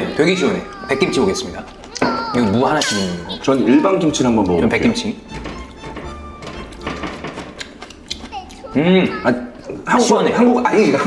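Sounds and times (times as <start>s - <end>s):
quiet background music: 0.0s - 11.0s.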